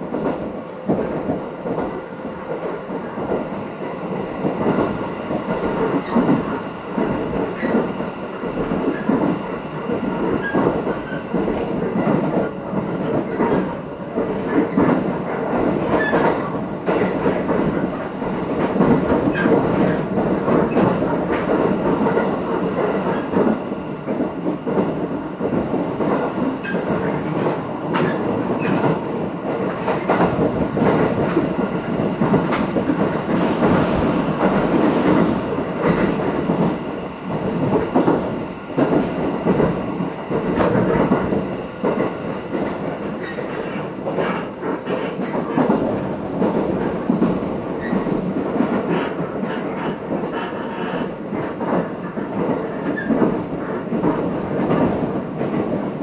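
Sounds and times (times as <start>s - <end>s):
train wheels rumbling on rails: 0.0s - 56.0s
clacks over rail joints: 4.4s - 56.0s.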